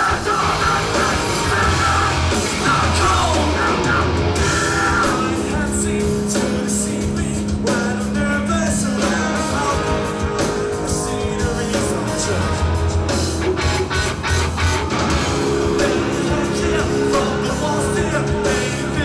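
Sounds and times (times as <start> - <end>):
person singing: 0.0 - 14.0, 15.3 - 19.0
drums: 0.0 - 19.0
electric guitars: 0.0 - 19.0.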